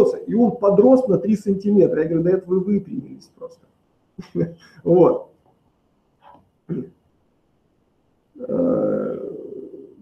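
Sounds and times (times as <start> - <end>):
man's held vocal sound: 8.4 - 10.0.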